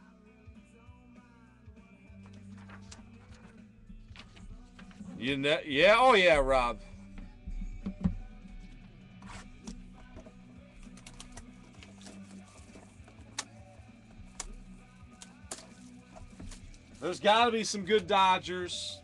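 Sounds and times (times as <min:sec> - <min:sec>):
quiet background music: 0:00.0 - 0:19.0.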